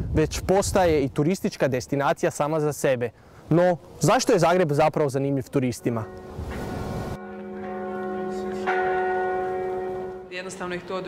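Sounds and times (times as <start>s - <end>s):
church bells ringing: 5.3s - 11.0s.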